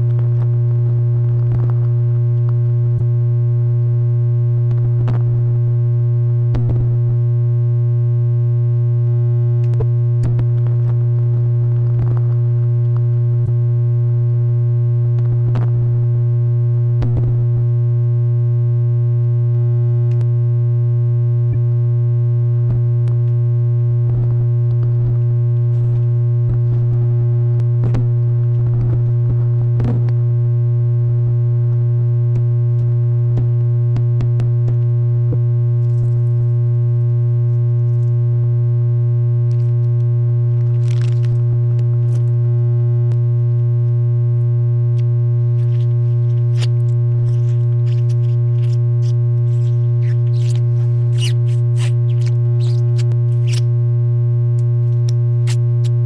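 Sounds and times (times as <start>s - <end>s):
clicks and crackles: 1.2s - 2.6s, 39.5s - 42.4s, 45.0s - 53.7s.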